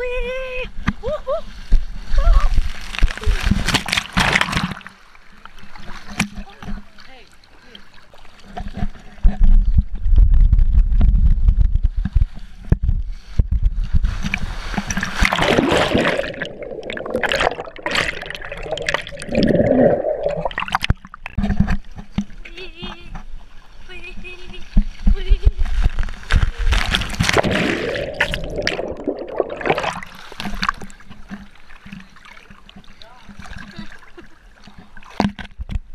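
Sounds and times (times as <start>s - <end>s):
body sliding down water slide: 1.0s - 5.0s, 11.4s - 20.8s, 23.9s - 35.2s
rushing splashing water: 1.9s - 9.2s, 14.0s - 21.4s, 24.2s - 35.4s.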